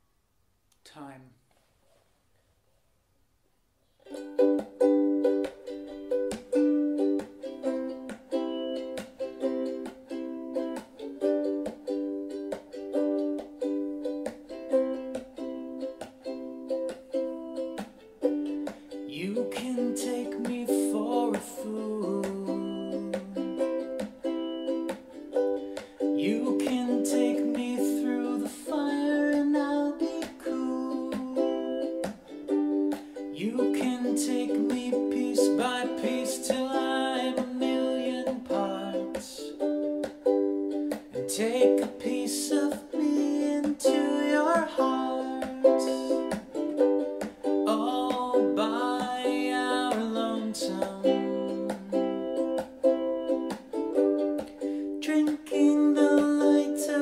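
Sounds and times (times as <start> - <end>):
ukulele strumming: 3.9 - 57.0.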